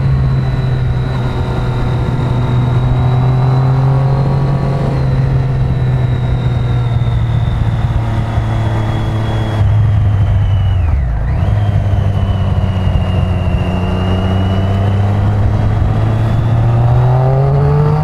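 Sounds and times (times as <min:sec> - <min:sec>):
motorcycle engine cruising: 0:00.0 - 0:18.0.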